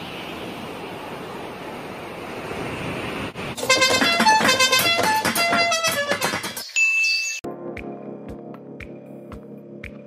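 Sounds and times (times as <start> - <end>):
road traffic rushing: 0.0 - 6.7.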